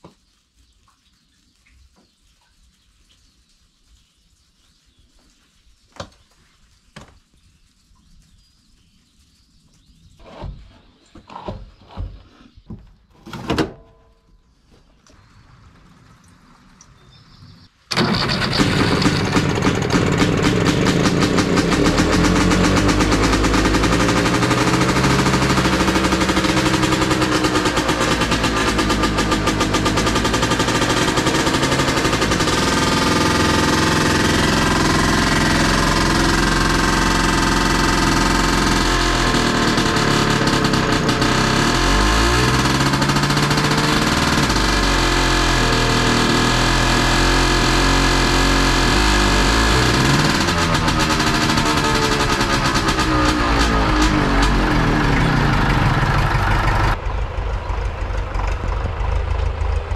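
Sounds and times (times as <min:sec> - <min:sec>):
diesel tractor engine clattering: 0:17.9 - 0:59.9.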